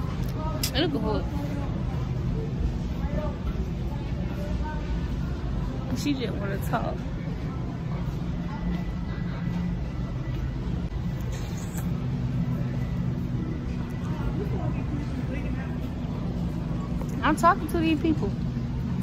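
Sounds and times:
faint voices: 0.0s - 19.0s
store interior rumble and hum: 0.0s - 19.0s.

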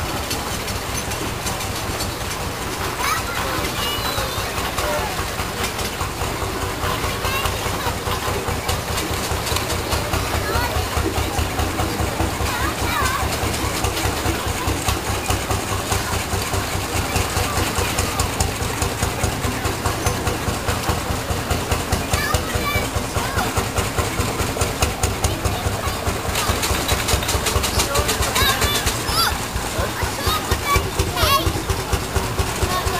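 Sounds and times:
people talking: 0.0s - 32.9s
vehicle engine rumbling: 0.0s - 32.9s.

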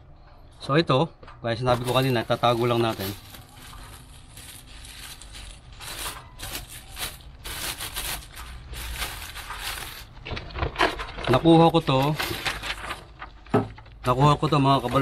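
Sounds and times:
plastic bag crinkling: 1.6s - 15.0s.

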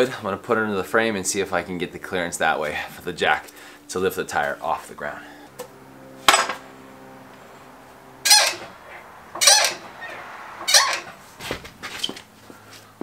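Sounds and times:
squeaky floor jack pumping: 8.3s - 8.7s, 9.4s - 9.8s, 10.6s - 11.1s.

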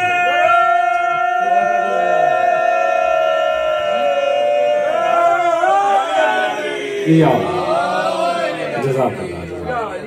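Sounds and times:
men chanting in unison: 1.6s - 10.0s.

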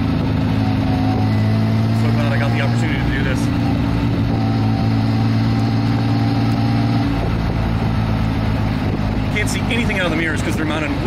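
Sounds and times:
car engine running: 0.0s - 11.0s
deep engine rumble: 0.0s - 11.0s.

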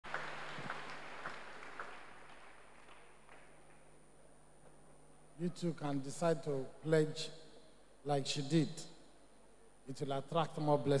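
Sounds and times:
crowd applause: 0.0s - 3.6s.

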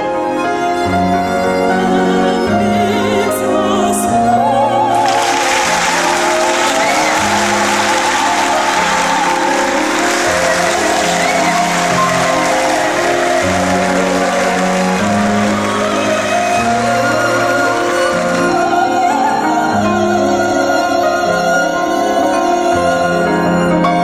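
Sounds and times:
operatic soprano singing: 0.0s - 24.0s
audience applause: 4.9s - 20.1s.

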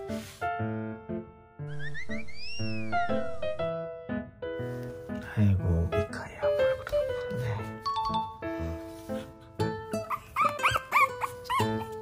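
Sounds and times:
puppy yipping: 10.0s - 12.0s.

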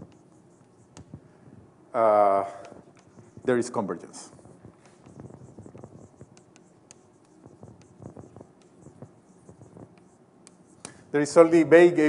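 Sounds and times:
chalk tapping and scraping on board: 0.0s - 1.3s, 2.4s - 11.6s.

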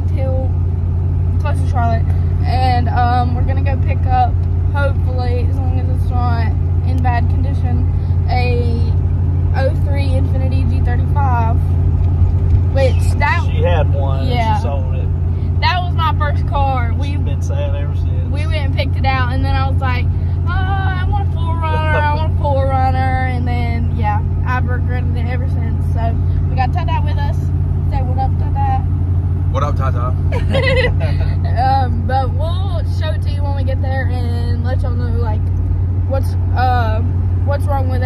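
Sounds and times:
people talking: 0.0s - 0.5s, 1.4s - 11.6s, 12.7s - 28.8s, 29.5s - 35.4s, 36.1s - 38.0s
road noise: 0.0s - 38.0s
truck engine drone: 0.0s - 38.0s.

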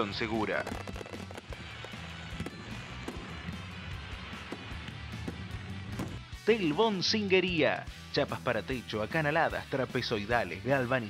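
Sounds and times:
fireworks crackling and popping: 0.0s - 6.4s.

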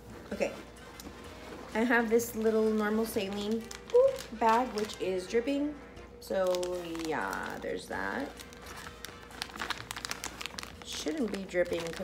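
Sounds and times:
plastic bag crinkling: 0.8s - 12.0s.

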